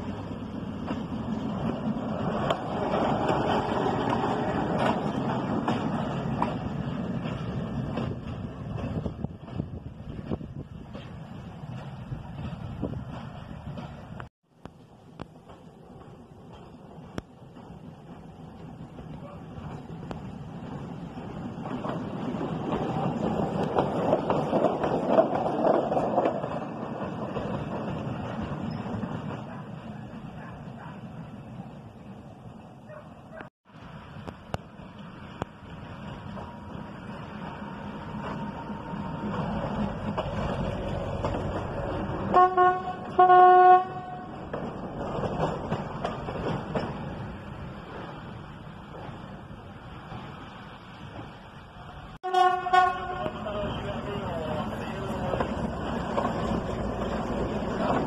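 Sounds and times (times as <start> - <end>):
diesel railcar passing: 0.0 - 58.0
train horn blasts: 42.3 - 44.4, 52.2 - 53.5.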